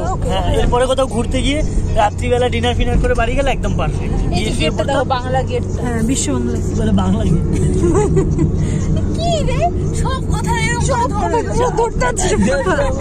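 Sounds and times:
car rumble: 0.0 - 13.0
voices talking: 0.0 - 13.0.

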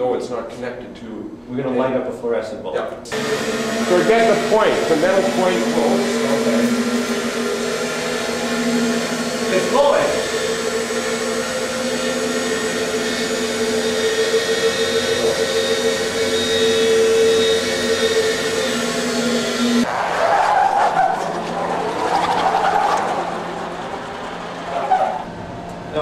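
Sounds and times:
generator electrical hum: 3.0 - 26.0
uneven rushing sound: 19.8 - 26.0.

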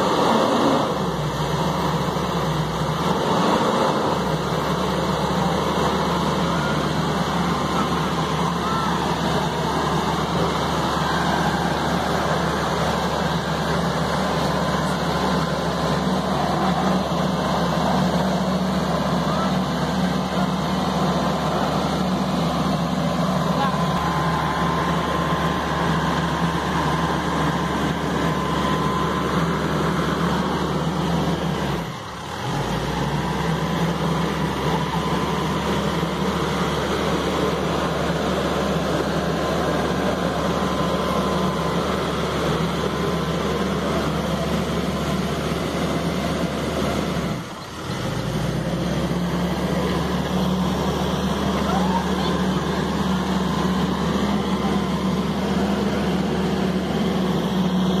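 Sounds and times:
pickup engine running under load: 0.0 - 58.0.

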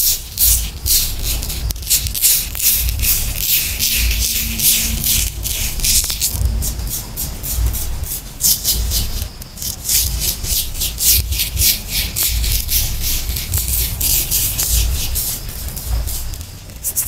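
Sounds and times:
sand rubbed by hand: 0.0 - 17.0.

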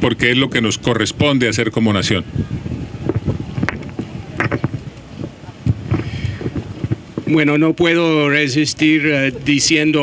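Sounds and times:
wind buffeting microphone: 0.0 - 8.3
microphone handling bumps: 2.3 - 7.6
sharp knocks on microphone: 3.1 - 4.8.

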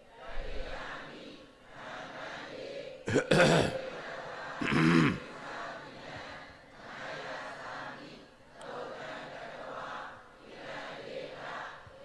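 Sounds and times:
man clearing his throat: 3.1 - 3.8, 4.6 - 5.2.

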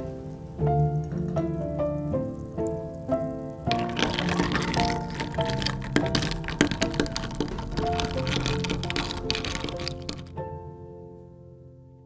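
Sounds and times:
background music: 0.0 - 11.8
ice clinking in glass: 3.7 - 10.3.

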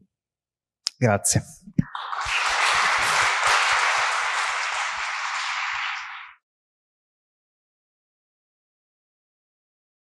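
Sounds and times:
audience applauding: 1.9 - 6.4.

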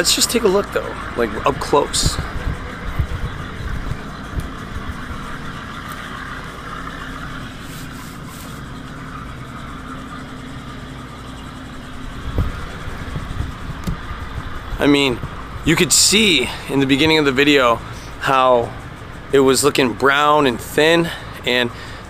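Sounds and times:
outdoor background hum: 0.0 - 22.0
low rumbles on microphone: 1.0 - 5.7, 11.1 - 15.8.

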